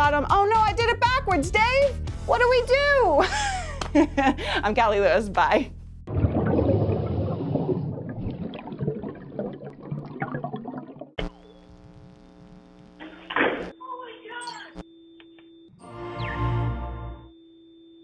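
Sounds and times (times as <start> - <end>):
clattering and splashing effects: 6.1 - 11.2.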